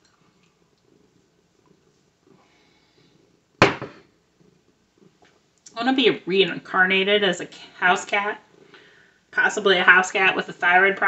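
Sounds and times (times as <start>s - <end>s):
glass set down on countertop: 3.6s - 4.0s.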